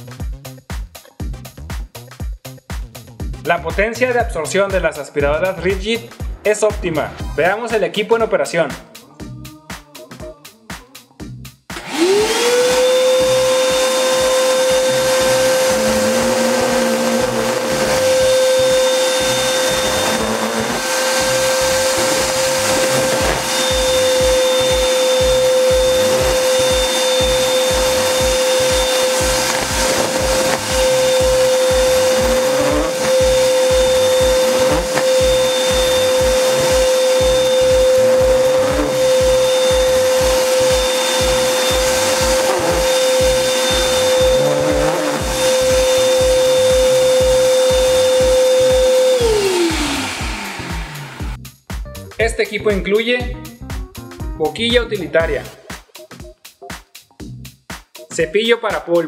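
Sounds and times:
music beat: 0.0 - 7.5, 8.6 - 59.0
shop vacuum motor whining: 11.7 - 51.4
hose sucking up debris: 12.0 - 51.3.

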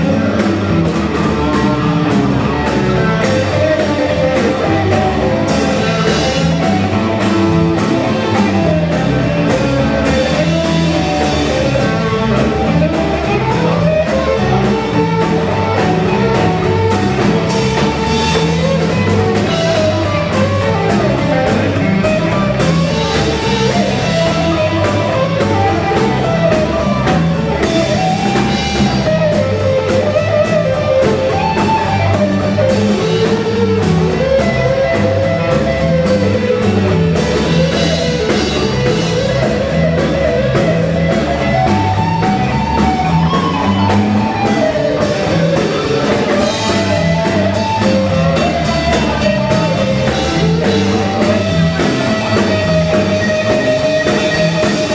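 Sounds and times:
drum kit with cymbals: 0.0 - 54.9
electric guitar lead line: 0.0 - 54.9
stepping bass line: 0.0 - 54.9.

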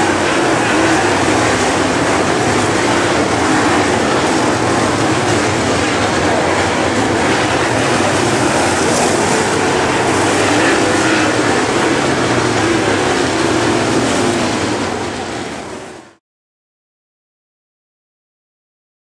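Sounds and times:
race car engines roaring: 0.0 - 16.2.

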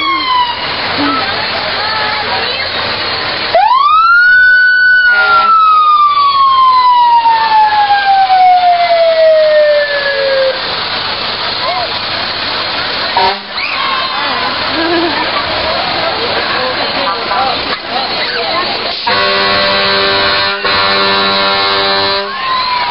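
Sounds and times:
fire truck siren: 0.0 - 14.6, 17.6 - 22.9.

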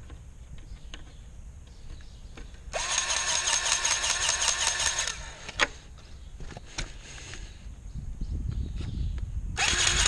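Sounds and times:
grease gun motor pulsing: 2.7 - 5.4, 9.6 - 10.0.

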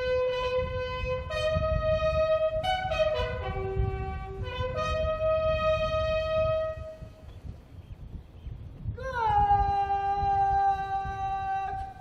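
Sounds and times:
bugle playing slow call: 0.0 - 7.2.

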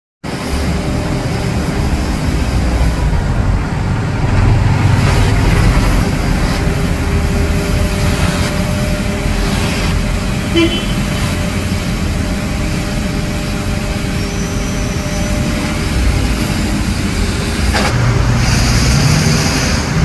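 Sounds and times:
street sweeper engine drone: 0.2 - 20.0.

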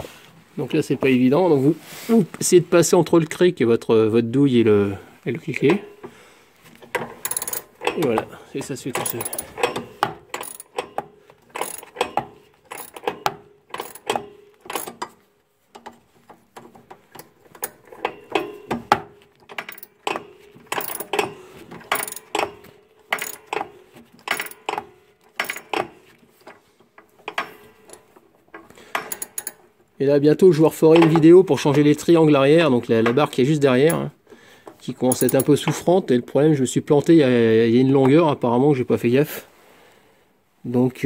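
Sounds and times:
hand ratchet clicking: 6.9 - 8.3, 9.0 - 15.2, 19.5 - 28.1, 28.8 - 29.6.

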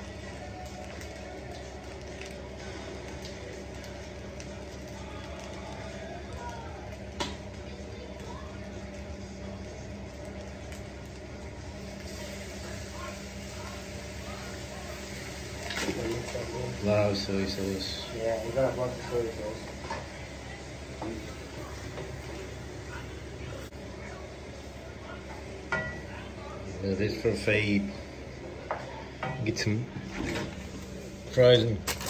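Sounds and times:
rice sizzling in a pan: 0.0 - 27.8.

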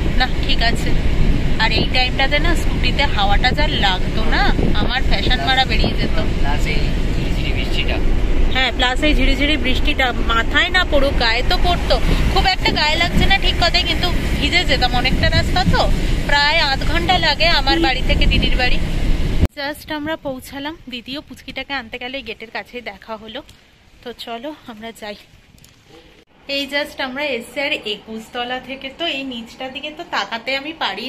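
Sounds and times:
car engine and tyres rumbling: 0.0 - 19.5
woman speaking: 0.1 - 1.0, 1.6 - 18.8, 19.5 - 25.2, 26.5 - 31.0.

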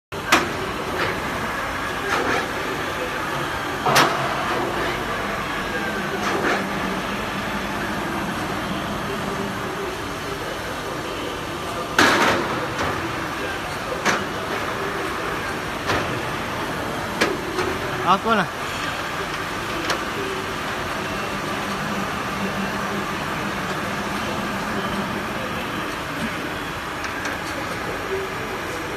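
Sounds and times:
steady machine hum: 0.1 - 28.9.

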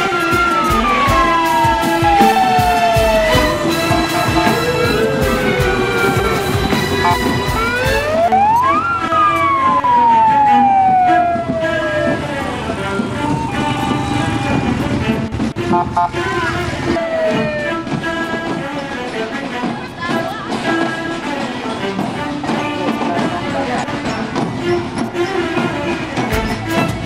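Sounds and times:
music with regular beats: 0.0 - 11.6, 24.3 - 27.0
siren wailing: 0.0 - 18.0.

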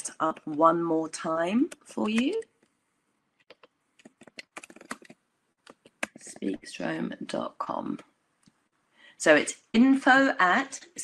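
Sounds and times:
typing on computer keyboard: 3.4 - 6.3.

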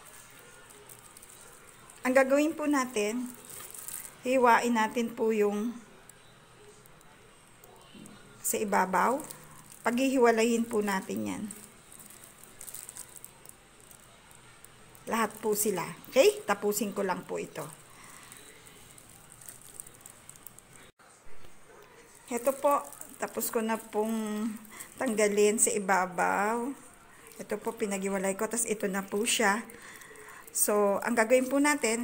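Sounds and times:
plastic gloves crinkling: 0.0 - 20.9, 21.7 - 32.0.

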